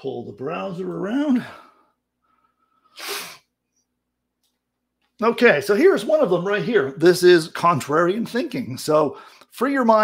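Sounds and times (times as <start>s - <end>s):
man's hissing breath burst: 2.7s - 3.5s.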